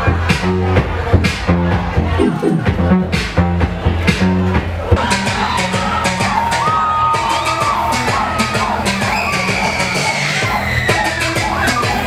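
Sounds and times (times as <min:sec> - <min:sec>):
loud electronic dance music: 0:00.0 - 0:12.0
crowd shouting: 0:04.8 - 0:12.0.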